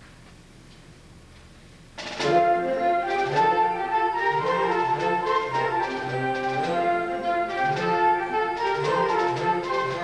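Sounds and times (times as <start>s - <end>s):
concert band playing: 2.0s - 10.0s.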